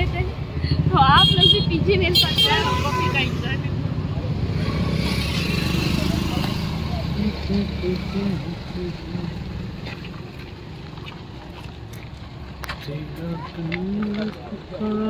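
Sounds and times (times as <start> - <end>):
people talking: 0.0 - 3.7, 5.9 - 9.4
vehicle engine rumbling: 0.0 - 15.0.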